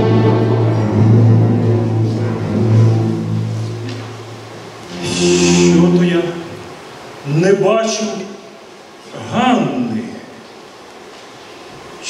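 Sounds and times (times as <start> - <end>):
orchestra holding low note: 0.0 - 6.9.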